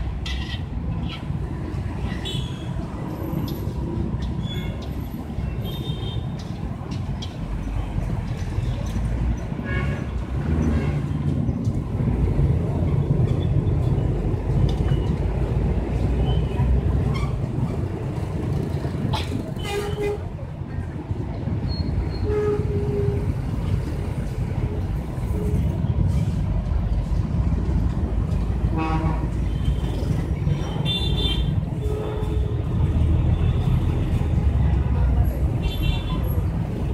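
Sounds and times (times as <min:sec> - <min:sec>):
traffic rumble: 0:00.0 - 0:36.9
voices: 0:32.1 - 0:36.9.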